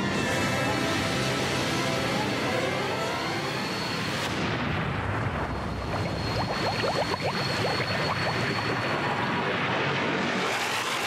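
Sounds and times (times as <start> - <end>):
rushing energy roar: 0.8 - 11.0
thin high whine: 5.4 - 11.0.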